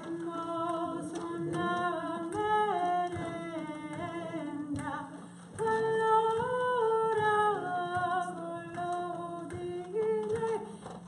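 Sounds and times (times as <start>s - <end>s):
woman singing wordless melody: 0.0s - 11.0s.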